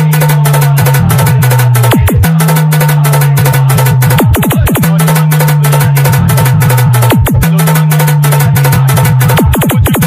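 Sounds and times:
dance music with heavy bass: 0.0 - 10.0.

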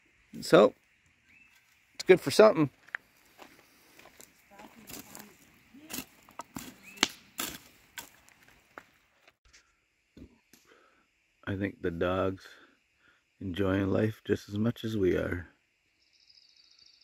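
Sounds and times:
campfire crackling and popping: 2.8 - 8.9
embers stirred with stick: 3.2 - 8.7.

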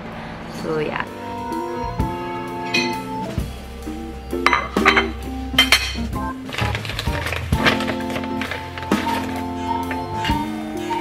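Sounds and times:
background music: 0.6 - 11.0.

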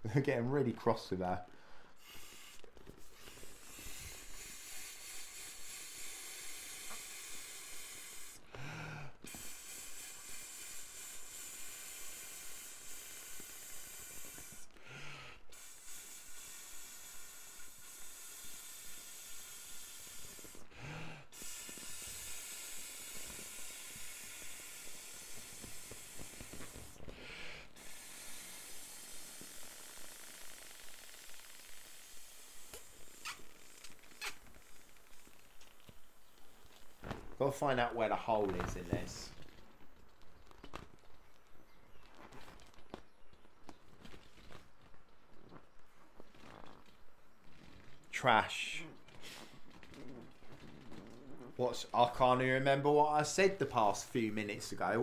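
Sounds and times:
intake of breath: 1.5 - 30.9
air blown into inflatable: 2.0 - 35.1.

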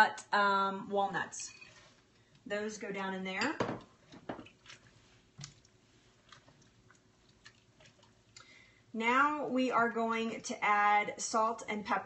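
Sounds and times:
spatula stirring thick mixture: 4.0 - 8.4.

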